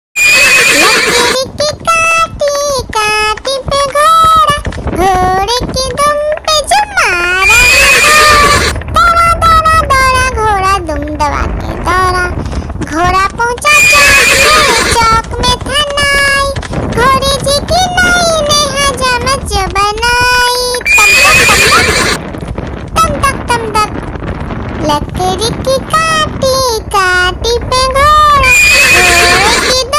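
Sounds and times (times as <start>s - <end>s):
horse neighing: 0.2s - 1.4s, 7.4s - 8.8s, 13.7s - 15.0s, 20.9s - 22.2s, 28.4s - 29.7s
person singing nursery rhyme: 0.8s - 21.3s, 24.8s - 29.9s.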